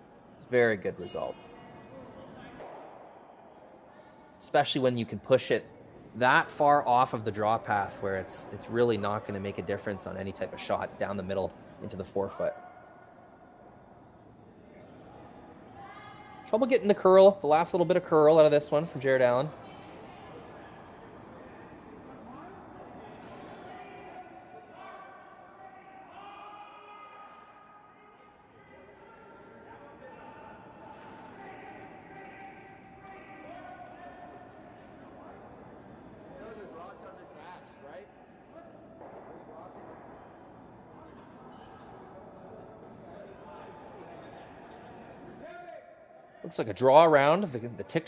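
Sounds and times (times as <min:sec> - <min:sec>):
distant voices in a hall: 0:00.0 - 0:48.0.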